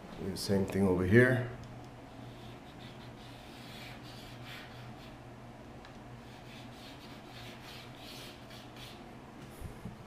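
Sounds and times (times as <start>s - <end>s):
pencil scratching on tile: 2.2s - 5.2s, 6.2s - 9.0s.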